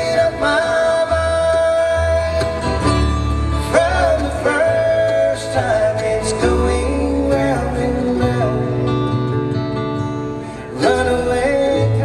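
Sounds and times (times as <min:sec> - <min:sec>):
acoustic guitar: 0:00.0 - 0:12.0
mandolin: 0:00.0 - 0:12.0
upright bass: 0:00.0 - 0:12.0.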